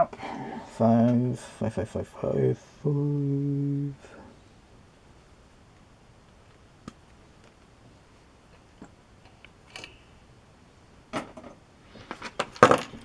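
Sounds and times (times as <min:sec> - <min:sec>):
plastic parts clattering: 0:12.1 - 0:13.0.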